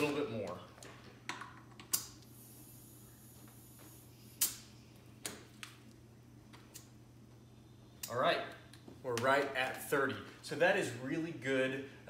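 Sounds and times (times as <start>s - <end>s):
compressed air hissing: 2.2s - 4.7s.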